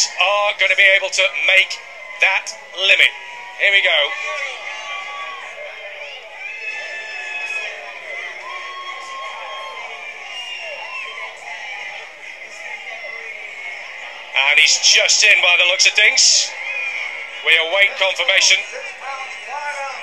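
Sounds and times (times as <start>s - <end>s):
crowd shouting: 0.0s - 20.0s.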